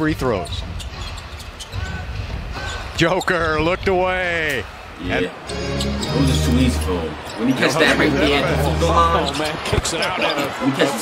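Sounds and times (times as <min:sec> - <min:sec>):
low arena rumble: 0:00.0 - 0:09.6.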